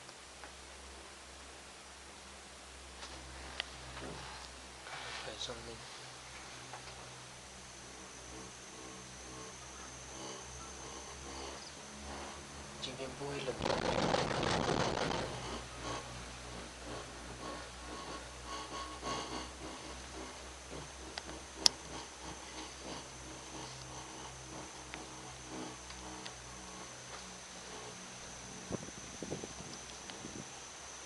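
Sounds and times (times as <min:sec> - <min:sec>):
insects droning: 0:00.0 - 0:31.0
low steady hum: 0:00.0 - 0:31.0
short insect chirps: 0:07.6 - 0:12.8.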